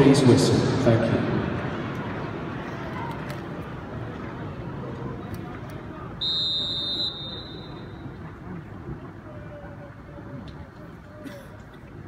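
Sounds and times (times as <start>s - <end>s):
stadium crowd murmuring: 0.0s - 12.0s
referee's whistle blast: 6.2s - 8.0s.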